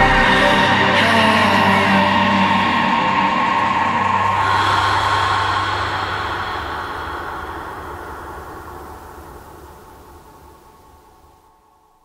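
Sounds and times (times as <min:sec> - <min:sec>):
droning noisy wash: 0:00.0 - 0:11.6
steady low hum: 0:00.0 - 0:12.0.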